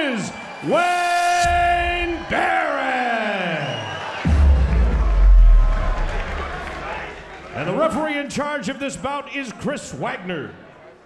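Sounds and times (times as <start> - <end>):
crowd cheering: 0.0 - 8.4
deep bass boom: 1.4 - 2.3, 4.2 - 7.6
arena music over loudspeakers: 4.2 - 8.0.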